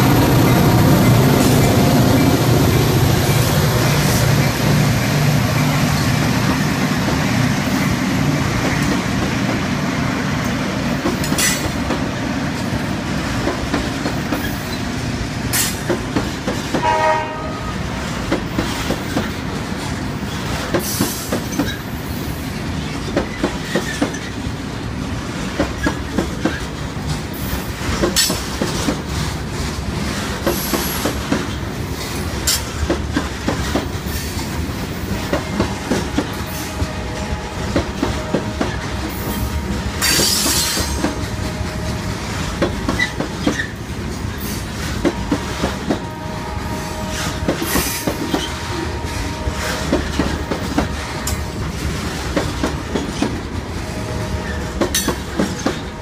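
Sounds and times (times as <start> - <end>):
freight train rolling past: 0.0 - 56.0
wheels clicking over rail joints: 40.0 - 46.1.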